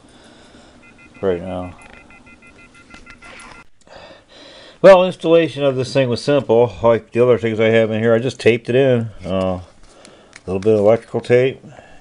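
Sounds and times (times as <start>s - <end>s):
faint electronic beeping: 0.8s - 3.7s.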